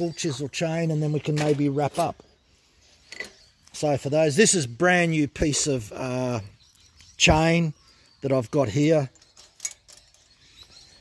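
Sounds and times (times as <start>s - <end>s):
saw chain links clicking: 9.2s - 10.6s.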